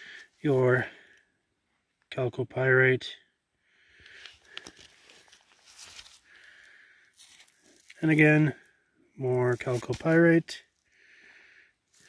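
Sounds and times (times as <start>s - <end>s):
glove rustling on rock: 4.1s - 6.3s, 7.1s - 8.5s, 9.4s - 10.4s.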